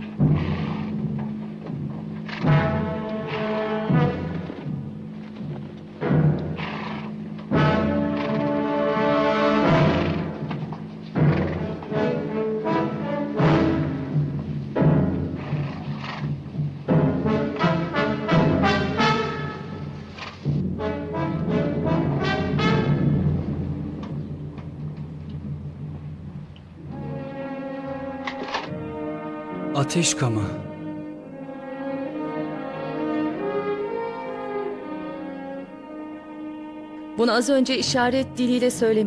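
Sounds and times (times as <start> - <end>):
orchestral brass and timpani chords: 0.0 - 39.0.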